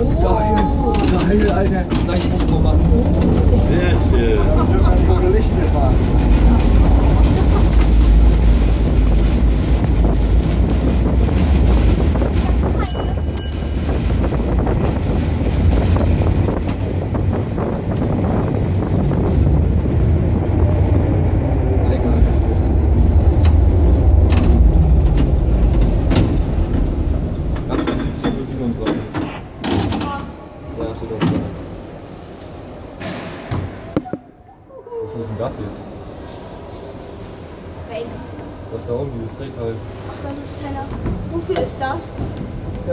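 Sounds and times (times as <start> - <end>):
tram wheels rumbling on rails: 0.0 - 34.1, 35.5 - 42.9
knocks and clatters: 1.0 - 3.8, 24.2 - 30.2.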